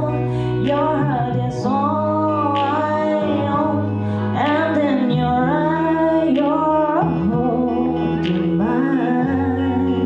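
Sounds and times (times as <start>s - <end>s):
instrumental backing track: 0.0s - 10.0s.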